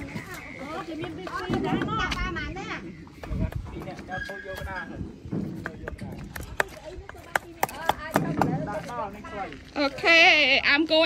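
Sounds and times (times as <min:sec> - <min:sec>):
voices talking in background: 0:00.0 - 0:11.0.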